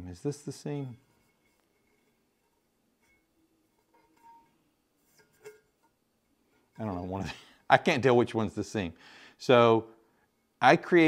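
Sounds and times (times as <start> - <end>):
faint soft sounds: 0.0 - 11.0.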